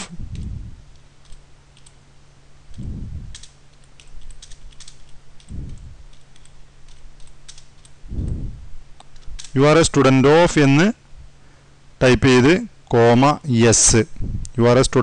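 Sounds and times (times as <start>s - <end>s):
steady low hum: 0.0s - 15.0s
soft low thumps: 0.1s - 0.9s, 5.5s - 6.1s, 8.1s - 8.9s.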